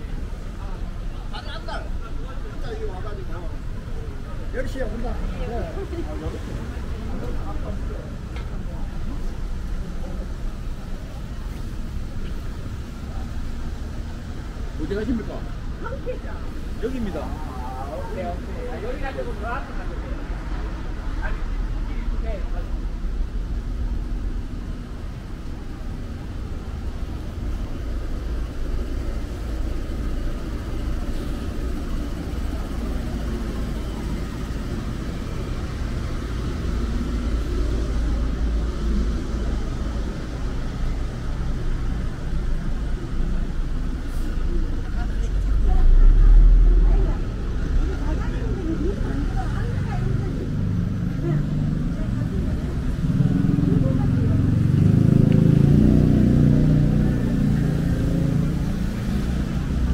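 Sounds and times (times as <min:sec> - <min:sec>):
street traffic rumble: 0:00.0 - 0:59.9
car passing close: 0:16.8 - 0:59.9.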